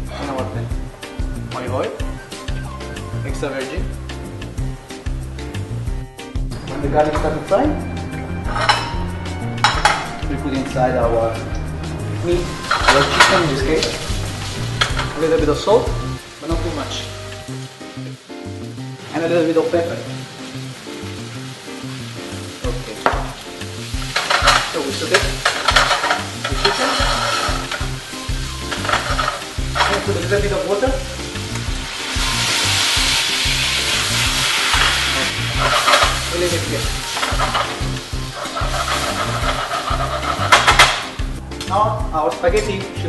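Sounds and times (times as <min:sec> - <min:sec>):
metal kitchenware clinking: 0:08.5 - 0:10.2, 0:12.5 - 0:14.0, 0:14.7 - 0:15.2, 0:24.0 - 0:28.0, 0:28.6 - 0:30.2, 0:34.7 - 0:36.4, 0:37.0 - 0:41.1
chicken sizzling in frying pan: 0:12.2 - 0:41.4.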